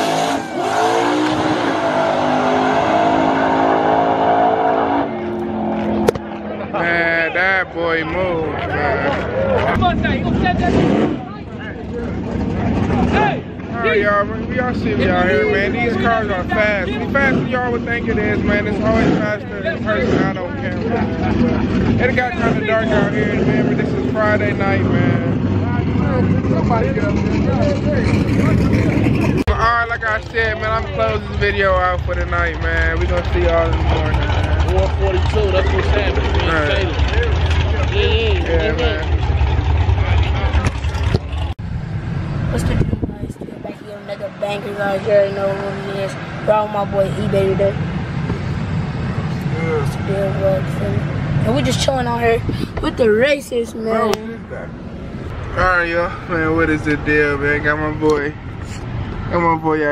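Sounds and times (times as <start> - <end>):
crowd voices: 0.0 - 41.7, 42.4 - 59.9
drag racing car engines: 0.0 - 59.9
people talking: 6.5 - 39.1, 40.0 - 41.5, 42.5 - 47.8, 49.4 - 54.7, 55.5 - 59.9.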